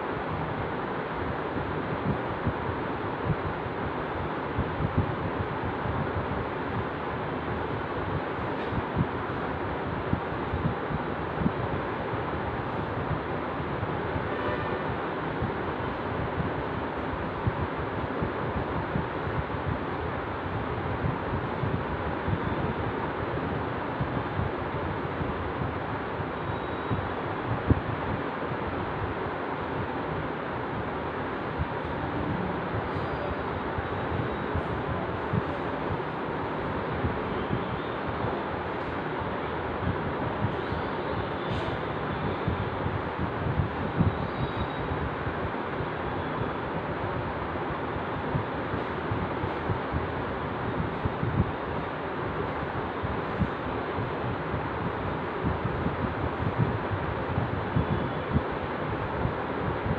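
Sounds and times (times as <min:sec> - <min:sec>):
steady rushing noise: 0:00.0 - 0:59.9.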